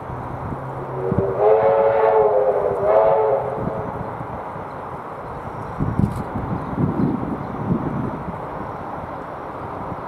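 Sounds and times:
steam locomotive whistle: 0:00.9 - 0:03.9.

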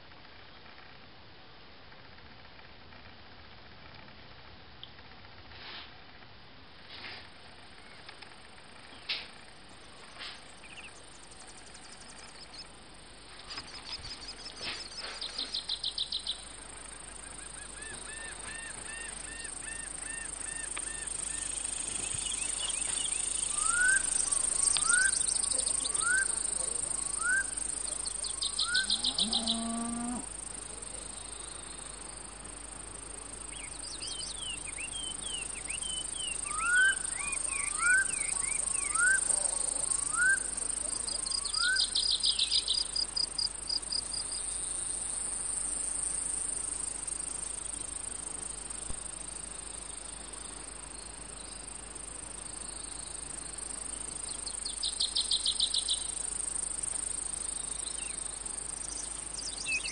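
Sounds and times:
crickets droning: 0:06.8 - 0:59.9
bird rapid high trills: 0:17.2 - 0:29.5, 0:33.6 - 0:43.1
bird rising whistled notes: 0:22.1 - 0:26.4, 0:36.4 - 0:40.5.

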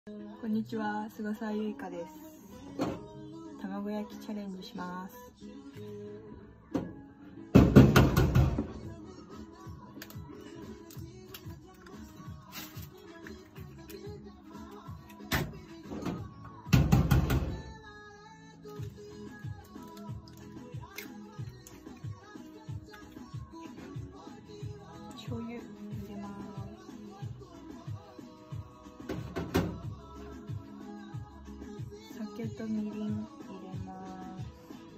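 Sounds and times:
background music: 0:00.1 - 0:34.9.

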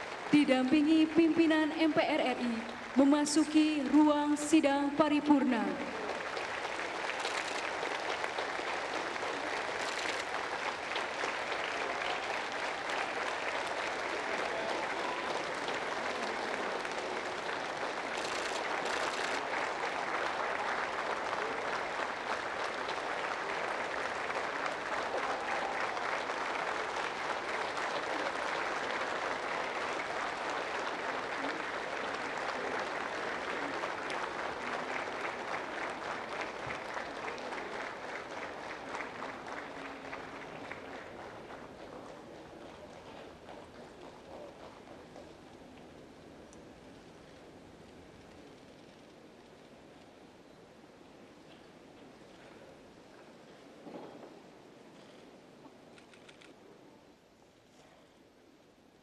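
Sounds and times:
audience applauding: 0:00.0 - 0:46.2.

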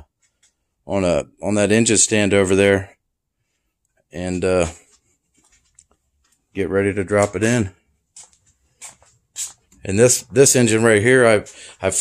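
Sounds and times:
man speaking: 0:00.8 - 0:03.0, 0:04.1 - 0:04.9, 0:06.5 - 0:07.8, 0:09.8 - 0:12.0
soft footsteps on concrete: 0:03.5 - 0:12.0.

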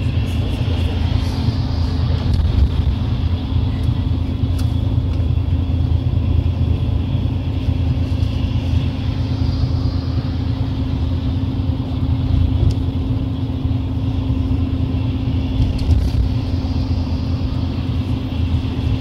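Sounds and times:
vehicle engine and road rumble: 0:00.0 - 0:19.0.

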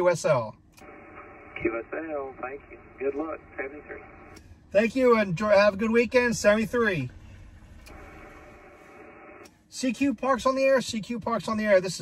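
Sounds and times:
faint steady tones: 0:00.1 - 0:12.0
radio static hiss: 0:00.8 - 0:04.4, 0:07.9 - 0:10.0.

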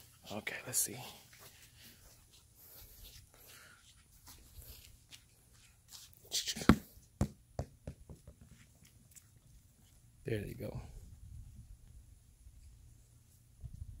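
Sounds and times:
ball bouncing on concrete: 0:06.6 - 0:08.6.

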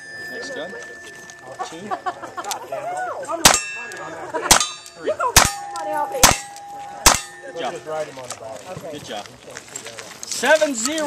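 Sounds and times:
steel target clanging: 0:03.4 - 0:07.8.

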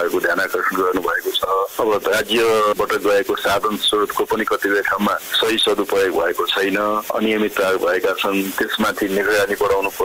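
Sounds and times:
radio news speech: 0:00.0 - 0:10.0.

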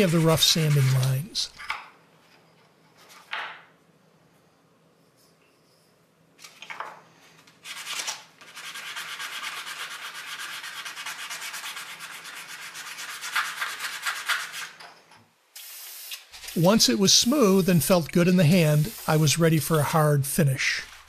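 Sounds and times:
sanding wood on sandpaper: 0:00.0 - 0:01.3, 0:07.7 - 0:14.8, 0:16.4 - 0:19.8.

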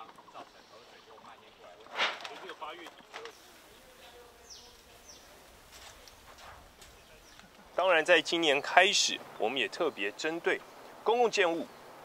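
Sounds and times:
faint distant voices: 0:00.0 - 0:11.9.

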